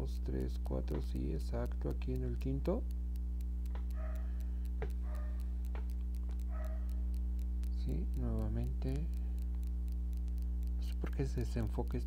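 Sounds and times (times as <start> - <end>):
fast faint ticking: 0.0 - 12.0
low electrical hum: 0.0 - 12.0.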